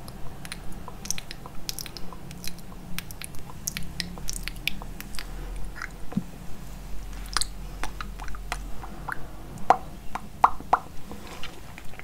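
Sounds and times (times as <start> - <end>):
mouth nibbling clicks and smacks: 0.0 - 6.3, 7.1 - 10.9.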